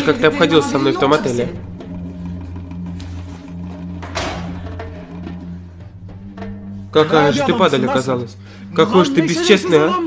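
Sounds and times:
low dramatic drone: 0.0s - 9.5s.

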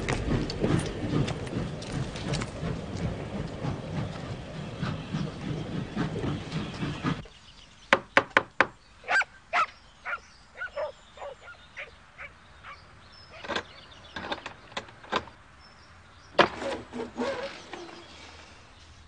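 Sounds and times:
dense clattering noise: 0.0s - 7.3s
dog barking: 9.1s - 12.8s.

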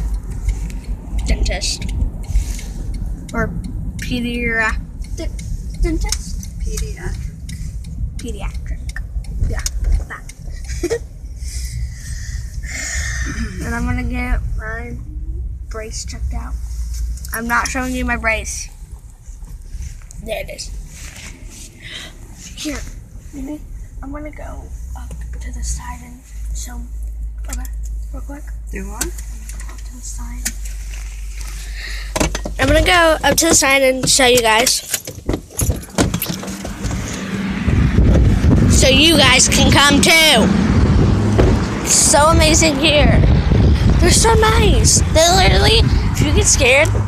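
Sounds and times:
car cabin rumble: 0.0s - 47.0s
person breathing: 11.4s - 13.6s, 21.0s - 22.4s, 31.5s - 32.2s
metallic clicks and jangling: 34.4s - 36.8s.

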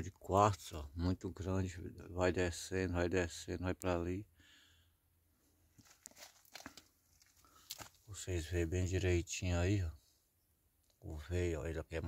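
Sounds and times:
faint rustles: 5.5s - 8.2s.

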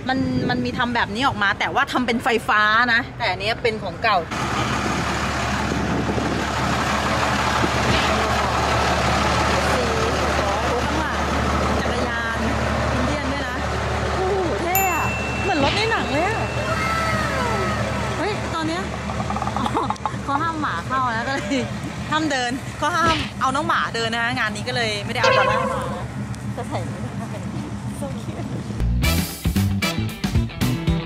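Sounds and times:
people talking: 0.0s - 4.3s, 9.4s - 18.9s, 20.2s - 28.7s
truck engine rumbling: 0.0s - 29.4s.

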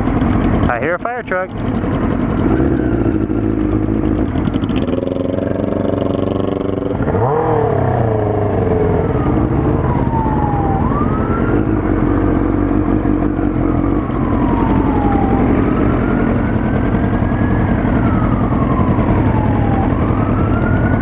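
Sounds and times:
motorcycle engines idling: 0.0s - 21.0s
siren wailing: 5.2s - 21.0s.

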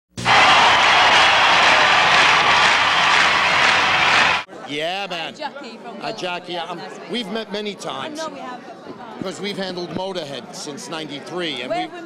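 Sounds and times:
loud rushing roar: 0.1s - 4.5s.

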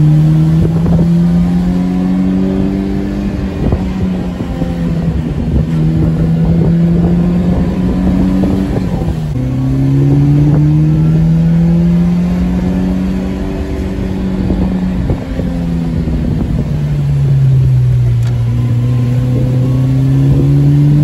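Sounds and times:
car engine running: 0.0s - 21.0s
road noise: 0.0s - 21.0s.

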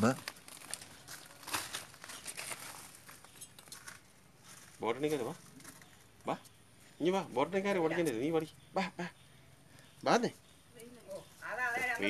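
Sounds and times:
crinkling and rustling handling noise: 0.0s - 6.5s.

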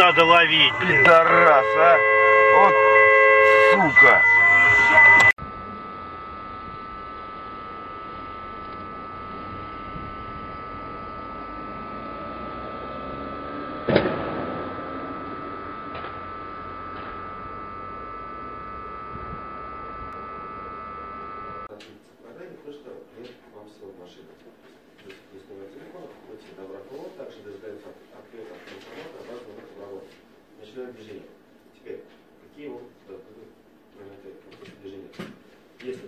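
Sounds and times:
electrical whine with hiss: 0.0s - 21.7s
car crash impact: 13.8s - 16.2s.

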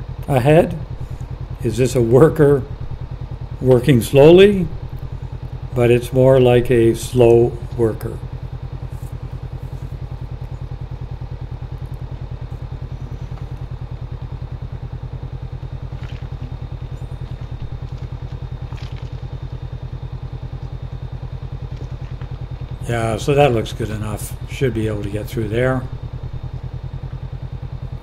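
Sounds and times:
motorcycle engine idling: 0.0s - 28.0s.

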